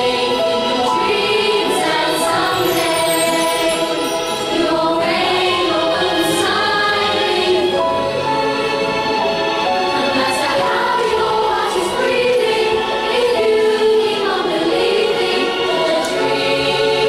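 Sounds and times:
choir singing with accompaniment: 0:00.0 - 0:17.0.

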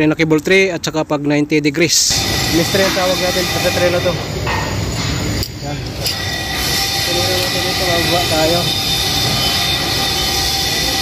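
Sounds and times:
industrial machinery noise: 0:01.9 - 0:11.0
high whining tones: 0:02.0 - 0:11.0.

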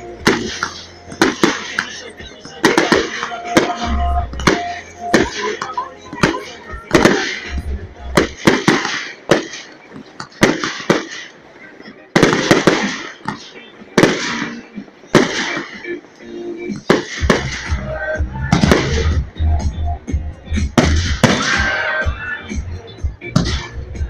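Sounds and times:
fireworks bursting bangs: 0:00.0 - 0:19.6, 0:20.6 - 0:22.6, 0:23.3 - 0:24.0.

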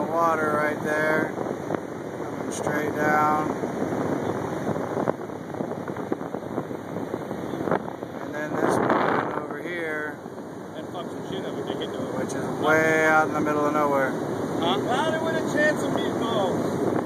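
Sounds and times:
wind on microphone: 0:00.0 - 0:17.0.

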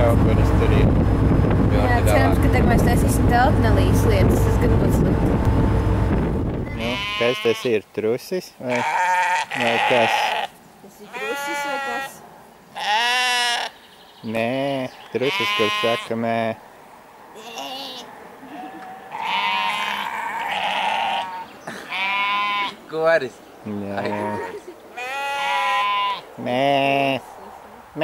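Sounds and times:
sheep bleating: 0:06.7 - 0:07.8, 0:08.6 - 0:13.8, 0:14.4 - 0:16.2, 0:17.4 - 0:22.8, 0:23.8 - 0:27.3.

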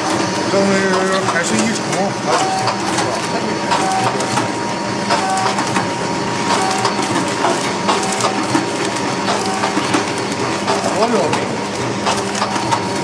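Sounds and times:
packing machine clattering: 0:00.0 - 0:13.0
short machine tone: 0:05.2 - 0:05.6, 0:09.4 - 0:09.8.

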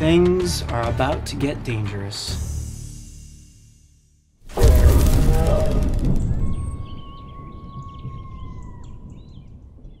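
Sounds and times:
loud hit: 0:04.5 - 0:07.0
low rumble: 0:04.5 - 0:10.0
birds chirping: 0:05.3 - 0:10.0.

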